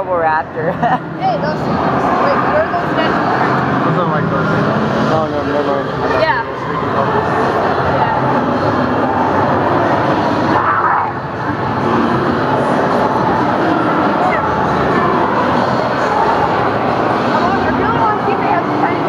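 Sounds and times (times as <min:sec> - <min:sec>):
din of a busy room: 0:00.0 - 0:19.0
indistinct voices: 0:00.0 - 0:19.0.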